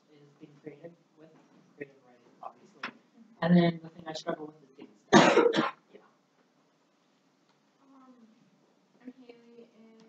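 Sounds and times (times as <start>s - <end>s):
person coughing: 5.2s - 5.8s.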